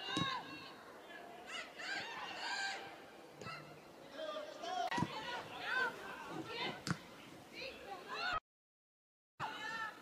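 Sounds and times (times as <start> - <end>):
players shouting: 0.0 - 6.8.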